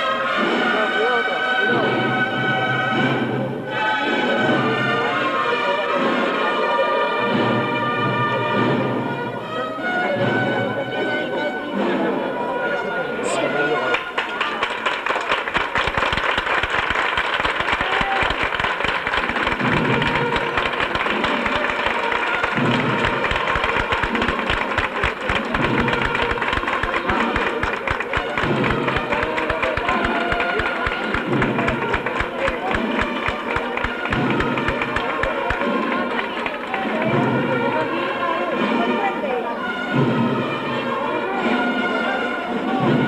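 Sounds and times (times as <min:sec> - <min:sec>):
crowd noise: 0:00.0 - 0:43.0
processional band music: 0:00.0 - 0:43.0.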